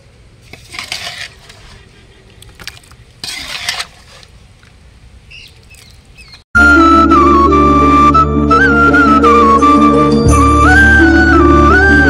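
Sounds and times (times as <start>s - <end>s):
metal ladle scraping metal pot: 0.5s - 2.1s, 3.2s - 4.3s.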